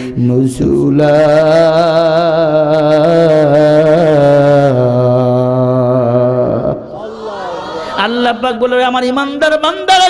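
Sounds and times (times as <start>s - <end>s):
man chanting through microphone: 0.0s - 10.0s.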